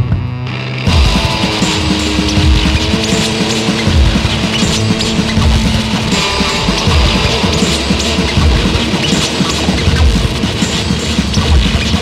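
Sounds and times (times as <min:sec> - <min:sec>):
distorted electric guitar: 0:00.0 - 0:12.0
drums steady beat: 0:00.0 - 0:12.0.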